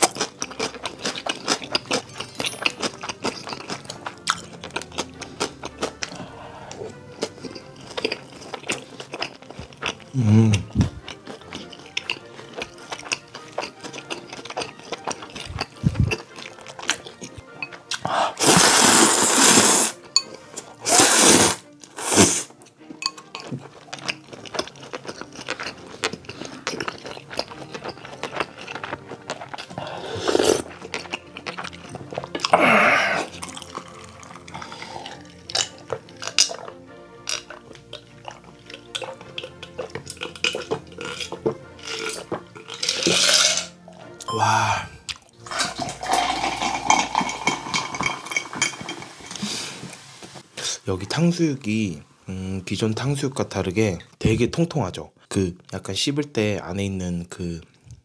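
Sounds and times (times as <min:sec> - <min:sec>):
chewing and mouth noises: 0:00.0 - 0:18.7, 0:21.7 - 0:49.5
noodle slurping: 0:00.0 - 0:22.6, 0:23.4 - 0:50.4
quiet background music: 0:00.0 - 0:58.0
drink slurps and swallows: 0:05.4 - 0:20.0, 0:20.8 - 0:22.5, 0:23.3 - 0:50.0.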